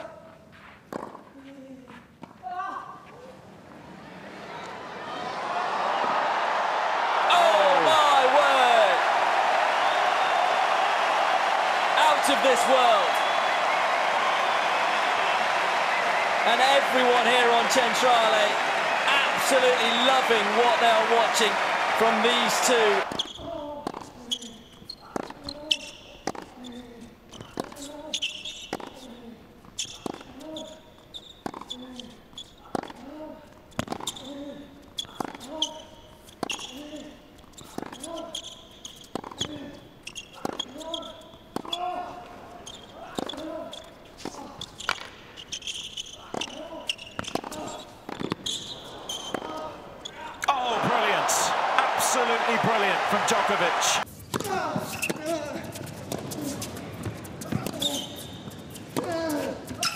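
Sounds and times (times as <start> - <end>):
tennis ball struck by rackets: 0.9 - 1.2, 47.2 - 48.5
shoes squeaking on court: 21.0 - 59.9.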